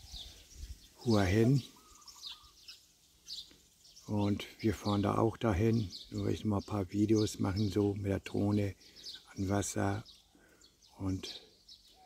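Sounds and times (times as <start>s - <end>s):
faint bird chirps: 0.0s - 12.0s
low warbling bird trill: 0.0s - 12.0s.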